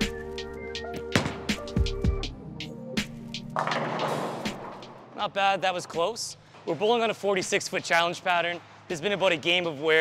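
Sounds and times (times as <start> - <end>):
background music with beat: 0.0 - 5.1.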